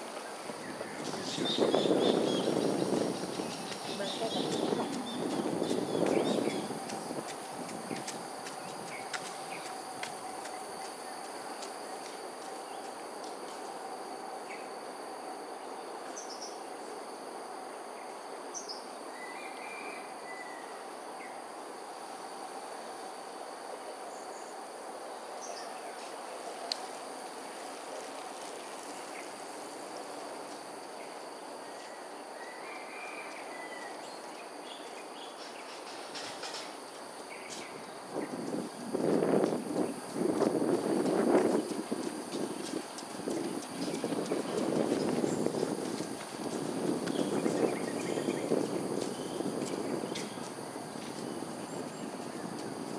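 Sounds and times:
insect drone: 0:00.0 - 0:52.9
irregular knocks and rustles: 0:35.4 - 0:36.8.

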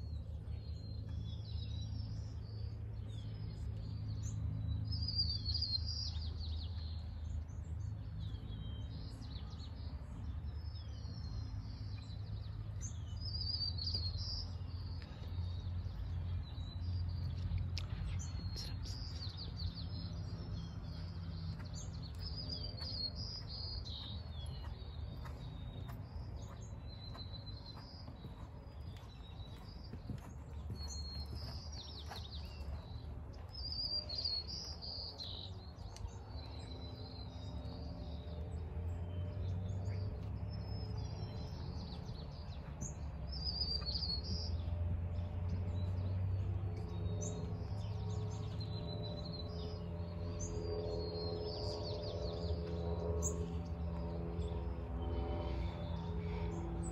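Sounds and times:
low background rumble: 0:00.0 - 0:56.9
small birds chirping: 0:00.0 - 0:56.9.

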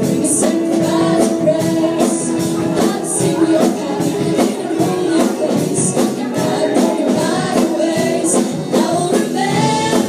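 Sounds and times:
bass: 0:00.0 - 0:10.0
drum kit: 0:00.0 - 0:10.0
electric guitar: 0:00.0 - 0:10.0
keyboard: 0:00.0 - 0:10.0
voices singing together: 0:00.0 - 0:10.0.

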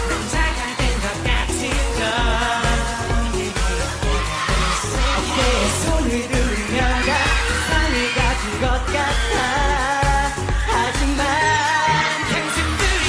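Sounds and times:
heavy dance beat: 0:00.0 - 0:13.0
person singing: 0:00.0 - 0:13.0.

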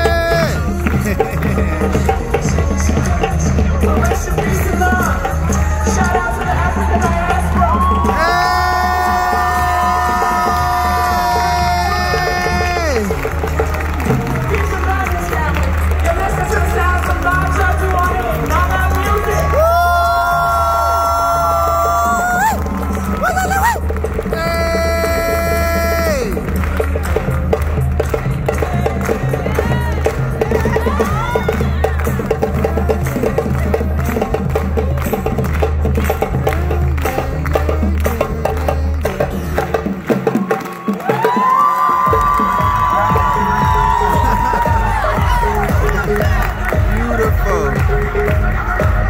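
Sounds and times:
audience cheering and whooping: 0:00.0 - 0:00.8, 0:05.6 - 0:17.0, 0:18.2 - 0:26.6, 0:28.7 - 0:32.2, 0:40.2 - 0:49.0
live drumming: 0:00.0 - 0:49.0
long high shouts: 0:07.7 - 0:13.1, 0:19.5 - 0:22.6, 0:23.2 - 0:26.3
clapping: 0:12.4 - 0:19.7, 0:26.0 - 0:39.2.

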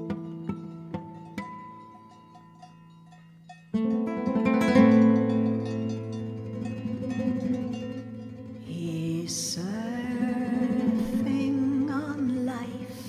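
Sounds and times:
plucked guitar notes: 0:00.0 - 0:13.0
strummed guitar: 0:00.0 - 0:13.0.

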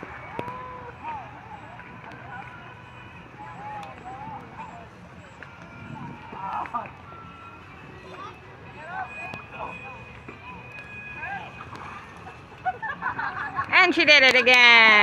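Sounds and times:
children's voices hubbub: 0:00.0 - 0:12.6
children calling and shouting: 0:00.0 - 0:13.7.

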